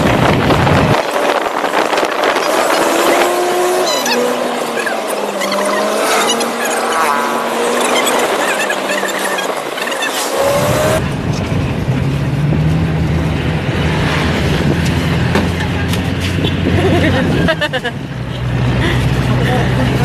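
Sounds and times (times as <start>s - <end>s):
engine and road noise: 0.0s - 20.0s
rising whine: 0.2s - 15.4s.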